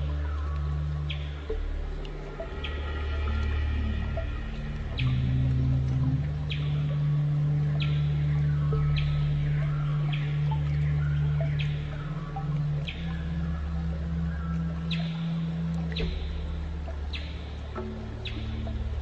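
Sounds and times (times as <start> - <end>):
ambient synth music: 0.0 - 19.0.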